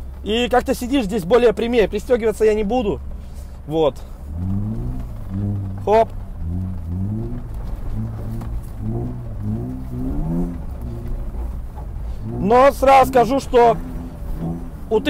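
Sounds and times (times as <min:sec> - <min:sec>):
car engine revving: 0:01.5 - 0:15.0.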